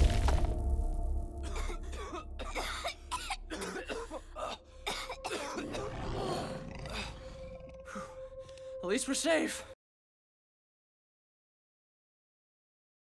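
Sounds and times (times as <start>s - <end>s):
cartoon characters coughing and grunting: 1.4s - 7.1s.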